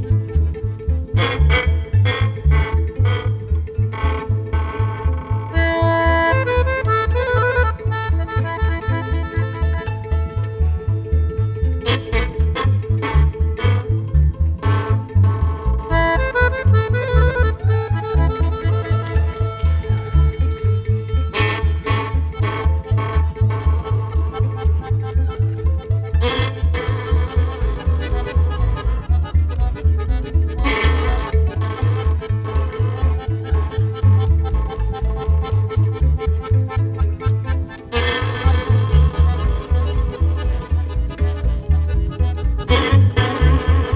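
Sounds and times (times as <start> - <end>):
band playing low pulsing beat: 0.0 - 43.9
fiddle playing high runs: 0.0 - 43.9.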